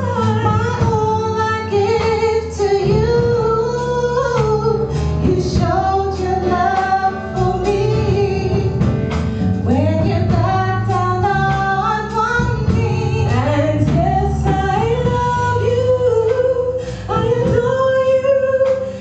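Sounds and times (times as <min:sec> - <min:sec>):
women singing in harmony: 0:00.0 - 0:08.9, 0:09.6 - 0:19.0
low instrumental accompaniment: 0:00.0 - 0:19.0.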